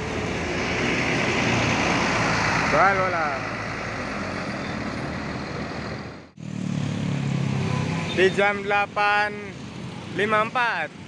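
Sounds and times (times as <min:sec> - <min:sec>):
low engine rumble of traffic: 0:00.0 - 0:11.0
road noise: 0:00.0 - 0:11.0.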